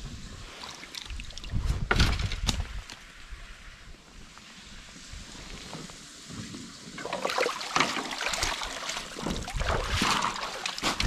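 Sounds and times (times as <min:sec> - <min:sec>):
wind rumble on microphone: 0:01.1 - 0:06.8, 0:09.2 - 0:10.3
water splashing around boot: 0:07.0 - 0:11.0.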